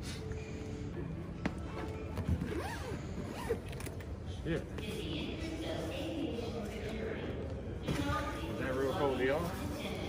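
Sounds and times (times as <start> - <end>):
suitcase clicks and creaks: 1.8 - 4.1
suitcase zipper pulled shut: 2.2 - 4.1.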